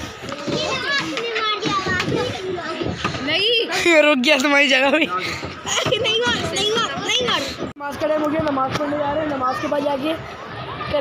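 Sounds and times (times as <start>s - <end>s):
children talking and calling: 0.0s - 11.0s.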